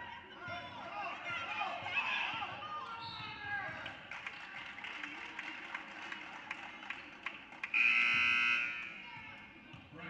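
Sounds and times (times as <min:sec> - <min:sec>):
scoreboard horn buzzing: 0:07.8 - 0:09.0.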